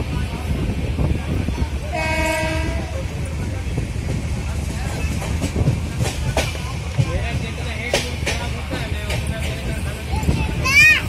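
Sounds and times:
train rumble and rattle: 0.0 - 11.0
train horn: 1.9 - 2.9.

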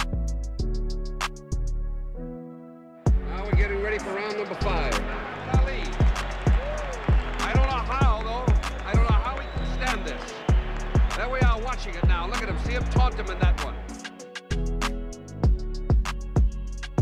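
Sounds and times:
backing music: 3.0 - 17.0.

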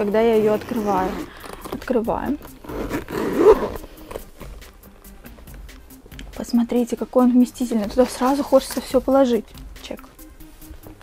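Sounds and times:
backpack rustling and clicking: 0.0 - 6.4.

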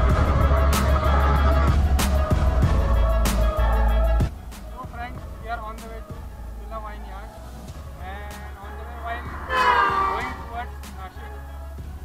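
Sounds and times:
faint voice or music: 8.0 - 11.3
vehicle horn: 9.1 - 10.7.

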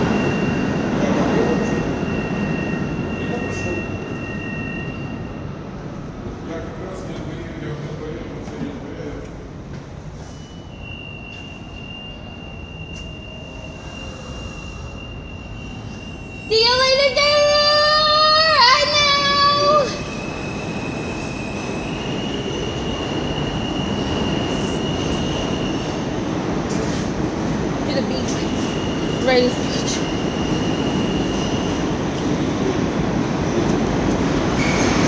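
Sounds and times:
subway train rumble: 0.0 - 35.0
thin high whine: 10.2 - 25.9.

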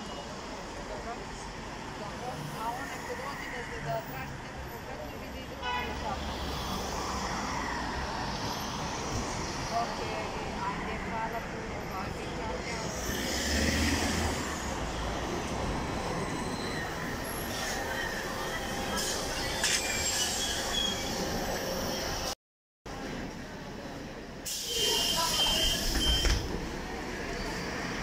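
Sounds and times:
traffic rumble: 0.0 - 28.0.

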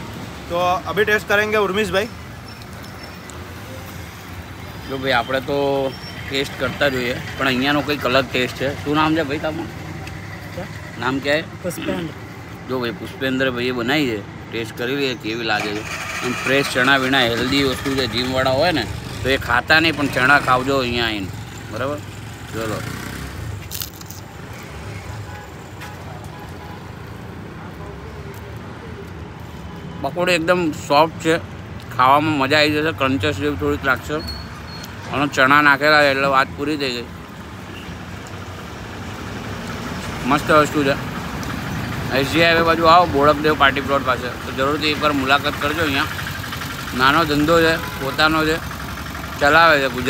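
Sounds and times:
road traffic noise: 0.0 - 50.0.

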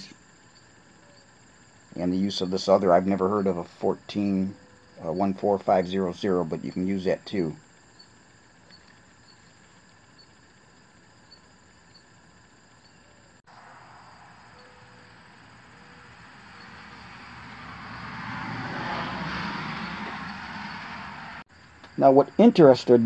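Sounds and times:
passing vehicle rushing: 16.0 - 21.4.

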